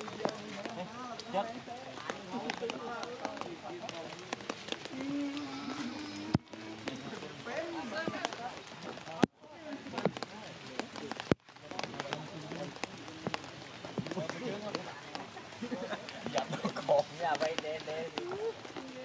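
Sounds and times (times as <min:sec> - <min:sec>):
light rain ticks: 0:00.0 - 0:19.0
people talking: 0:00.0 - 0:19.0.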